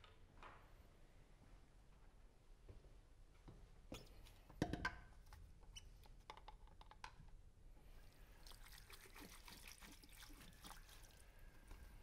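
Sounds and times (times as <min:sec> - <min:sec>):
small clicks and knocks at sink: 0:06.2 - 0:07.2
tap water running and splashing: 0:08.4 - 0:11.8.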